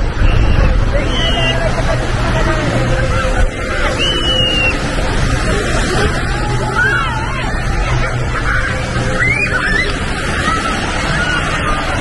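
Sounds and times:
wind rumble on microphone: 0:00.0 - 0:08.9
distant crowd chatter: 0:00.0 - 0:12.0
surf: 0:00.0 - 0:12.0.

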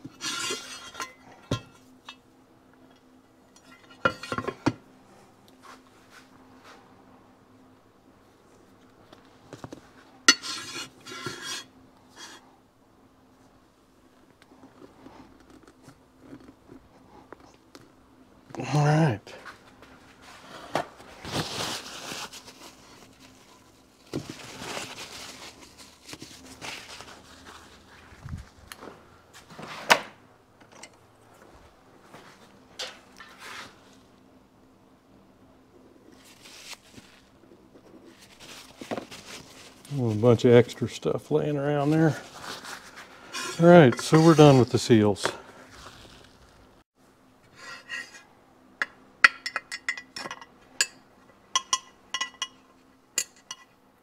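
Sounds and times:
paper towel rustling: 0:19.5 - 0:28.7, 0:36.2 - 0:37.3, 0:38.0 - 0:41.0, 0:41.8 - 0:46.6.

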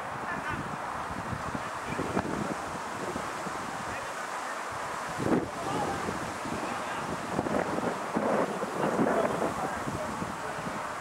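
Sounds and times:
wind buffeting microphone: 0:00.0 - 0:11.0
faint voices: 0:00.1 - 0:11.0.

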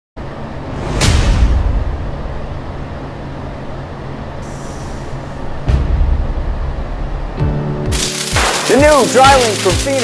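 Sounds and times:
low rumbling drone: 0:00.2 - 0:08.4
heavy hit: 0:00.7 - 0:02.9, 0:05.6 - 0:07.4.

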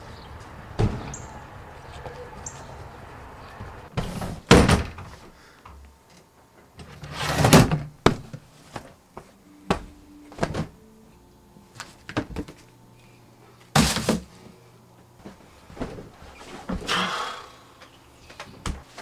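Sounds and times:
door slamming: 0:00.8 - 0:01.3, 0:04.0 - 0:05.1.

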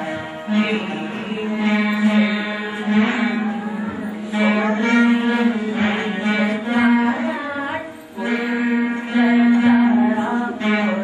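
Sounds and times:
veena ensemble playing: 0:00.0 - 0:11.0.

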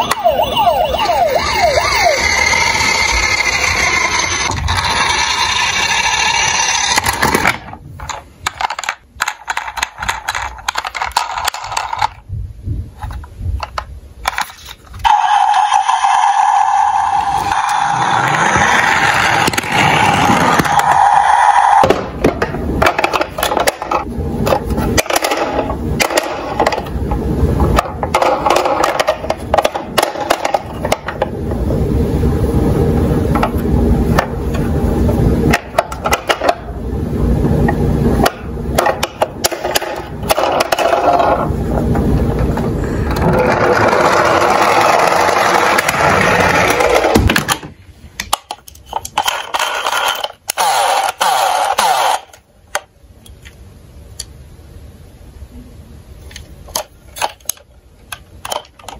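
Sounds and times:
steady tone: 0:00.0 - 0:06.8
toys knocking and clattering: 0:02.2 - 0:12.3, 0:13.0 - 0:15.1, 0:21.8 - 0:31.3, 0:35.5 - 0:36.6, 0:37.7 - 0:53.5, 0:56.3 - 0:58.9
plastic wheels rumbling on wood: 0:16.7 - 0:27.1, 0:38.2 - 0:47.7.

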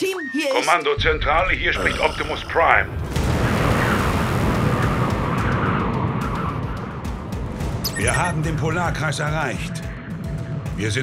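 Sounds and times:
storm wind rushing: 0:01.0 - 0:10.9.

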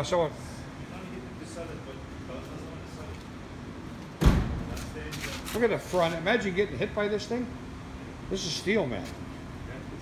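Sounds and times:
heavy deep thump: 0:04.2 - 0:04.7.

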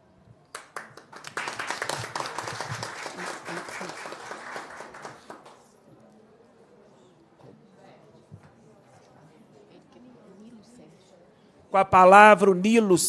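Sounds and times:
audience applauding: 0:00.5 - 0:05.7.

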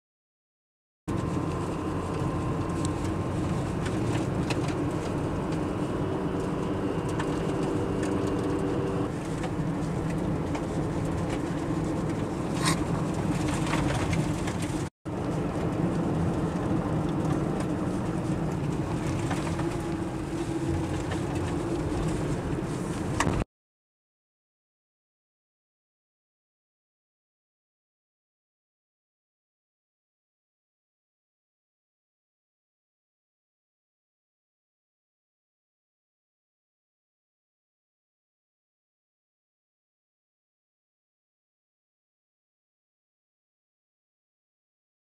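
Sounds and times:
car engine and tyre rumble: 0:01.1 - 0:23.5.

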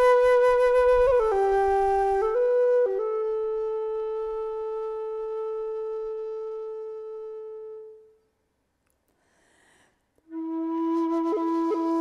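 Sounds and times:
wooden flute long note: 0:00.0 - 0:08.2, 0:10.3 - 0:12.0.

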